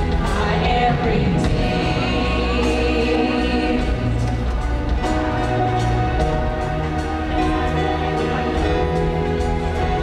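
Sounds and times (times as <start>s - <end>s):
vocals holding long notes: 0.0s - 5.2s
bass guitar: 0.0s - 10.0s
drums: 0.0s - 10.0s
guitars: 0.0s - 10.0s
keyboard: 0.0s - 10.0s
worship band playing: 0.0s - 10.0s.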